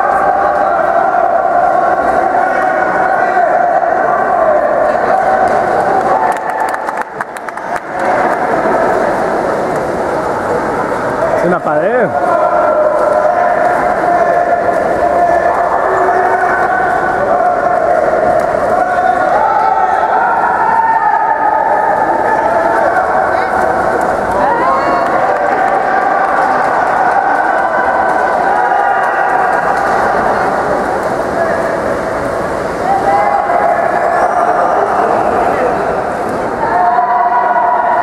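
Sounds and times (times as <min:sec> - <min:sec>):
crowd shouting and cheering: 0:00.0 - 0:38.0.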